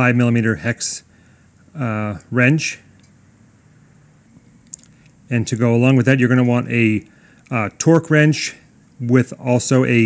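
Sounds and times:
wet mouth click: 4.6 - 5.2.

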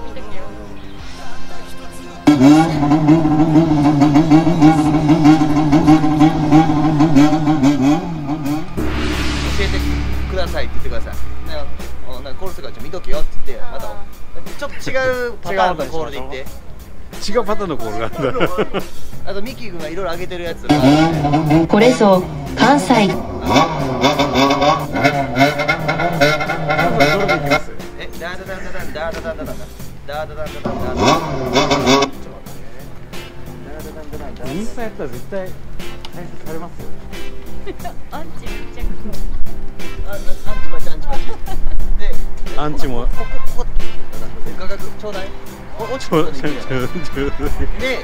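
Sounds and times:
motorcycle engine revving rhythmically: 2.2 - 8.8, 20.7 - 27.8, 30.6 - 32.3.

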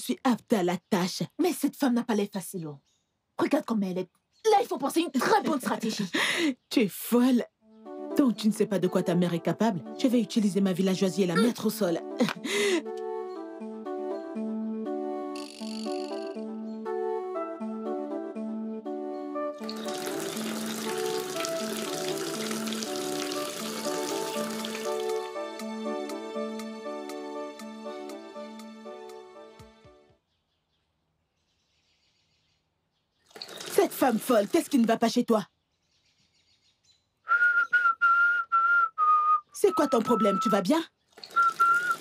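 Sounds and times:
background music: 7.0 - 30.2
water splashing into plastic bucket: 19.6 - 25.3, 33.3 - 34.8, 41.1 - 42.0
person whistling high notes: 37.3 - 40.6, 41.3 - 42.0.

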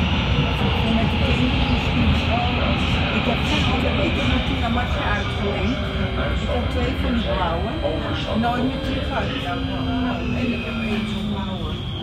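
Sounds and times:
metro train rumbling: 0.0 - 12.0
passengers talking: 0.0 - 12.0.

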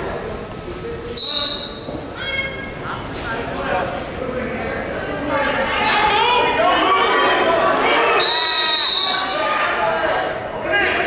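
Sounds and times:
people shouting: 5.7 - 11.0
high-pitched yell: 5.8 - 9.8.

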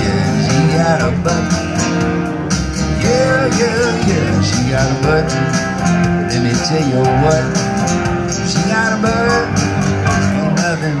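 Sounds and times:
electric guitar: 0.0 - 11.0
piano: 0.0 - 11.0
strummed acoustic guitar: 0.0 - 11.0.

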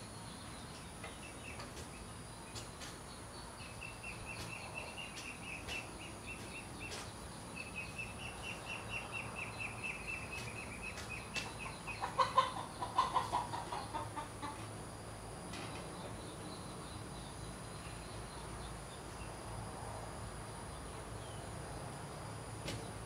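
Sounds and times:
faint high insect-like whine: 0.0 - 23.0
bird clucking calls: 9.9 - 14.7.

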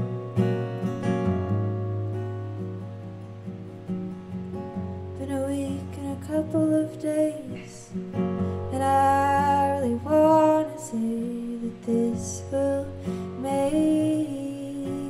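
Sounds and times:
acoustic guitars: 0.0 - 15.0
woman singing: 5.2 - 15.0.

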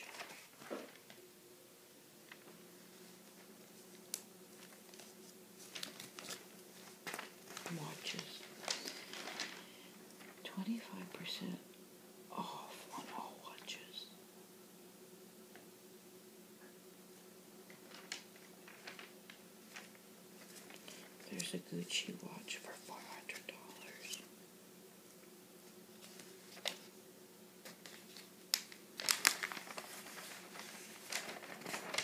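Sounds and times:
faint steady hum: 0.0 - 32.0
person whispering: 7.6 - 9.0, 10.4 - 11.6, 12.3 - 14.2, 21.2 - 24.3
crisp paper snap: 27.6 - 32.0.

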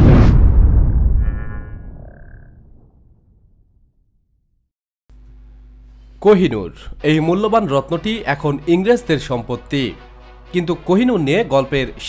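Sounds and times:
deep rumble: 0.0 - 4.0.

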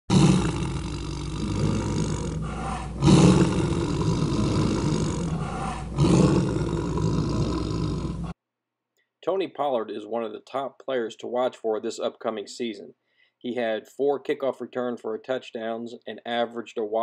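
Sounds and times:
tiger roaring and growling: 0.1 - 8.4.

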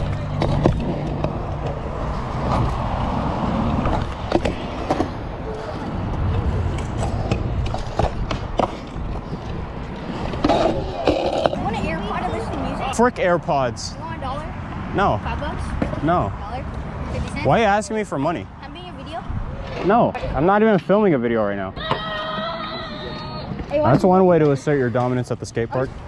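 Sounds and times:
scooter wheels rolling on concrete: 0.0 - 14.5, 15.2 - 26.0.

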